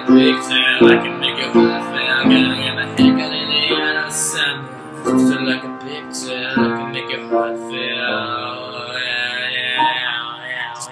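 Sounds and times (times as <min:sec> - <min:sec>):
long held musical chord: 0:00.0 - 0:10.2.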